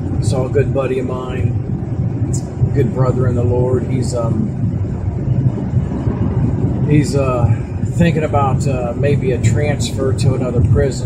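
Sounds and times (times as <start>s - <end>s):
car road and engine noise: 0.0s - 11.0s.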